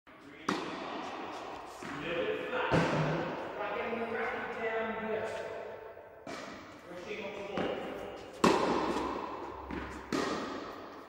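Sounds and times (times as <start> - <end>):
tennis racket striking ball: 0.4 - 2.1, 5.3 - 6.8, 7.4 - 11.0.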